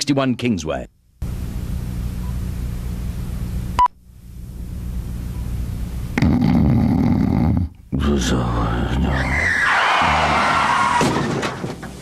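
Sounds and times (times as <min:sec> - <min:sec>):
tape hiss: 0:00.0 - 0:06.2
low hum: 0:00.9 - 0:09.2.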